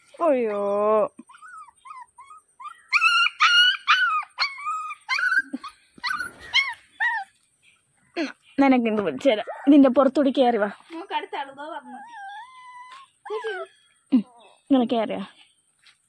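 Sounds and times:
puppy whining and yelping: 0:01.2 - 0:07.6, 0:11.8 - 0:14.6.

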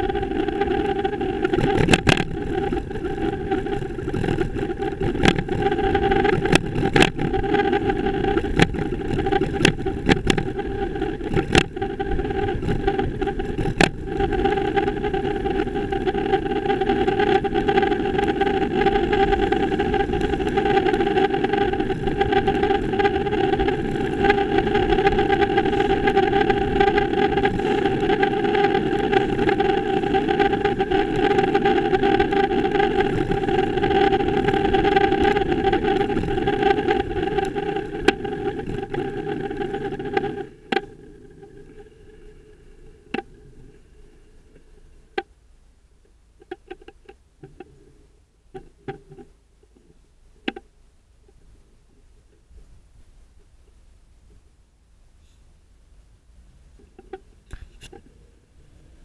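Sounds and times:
bicycle rolling and wind rumble: 0:00.0 - 0:54.6, 0:56.4 - 0:59.0
constant hum: 0:00.0 - 0:59.0
sharp clicks and knocks: 0:01.4 - 0:02.8, 0:03.8 - 0:05.6, 0:06.3 - 0:07.6, 0:08.4 - 0:10.6, 0:12.6 - 0:14.3.

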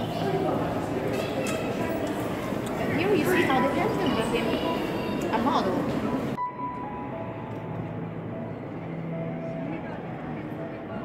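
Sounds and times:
murmur of distant voices echoing: 0:00.0 - 0:11.0.

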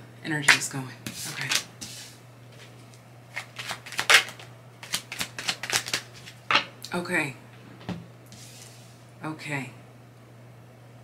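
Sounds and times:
cards being shuffled by hand: 0:00.5 - 0:06.4.

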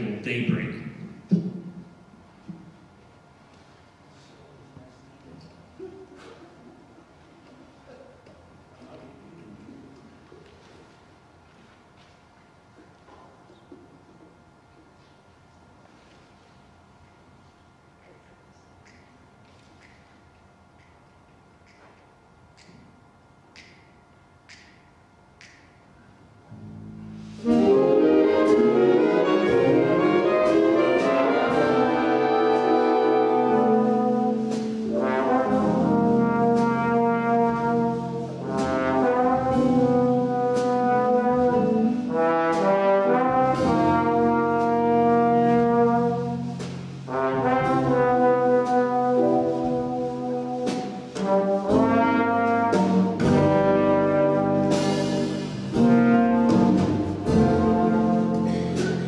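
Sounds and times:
brass and saxophone chords: 0:26.5 - 0:59.0
jazz rhythm section: 0:26.5 - 0:59.0.

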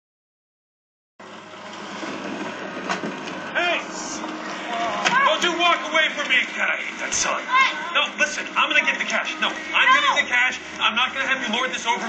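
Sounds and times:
noisy tv background: 0:02.8 - 0:12.0.

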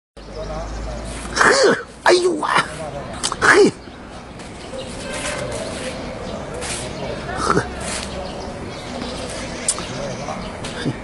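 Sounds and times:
faint background voices: 0:00.2 - 0:11.0.

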